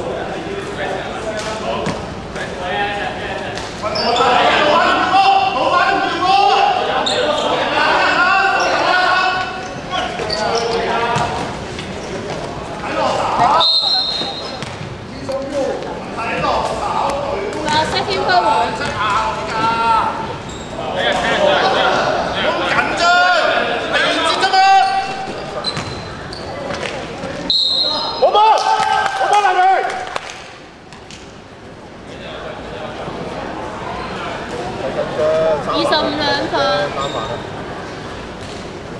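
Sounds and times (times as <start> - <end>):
players calling out: 1.6 - 30.2
shoes squeaking on floor: 3.8 - 4.6, 9.6 - 12.6, 13.3 - 15.0, 18.8 - 20.8, 24.7 - 28.3, 36.9 - 37.5
referee's whistle: 13.5 - 14.6, 27.5 - 28.3
basketball bouncing on court: 14.6 - 15.0, 25.6 - 26.1.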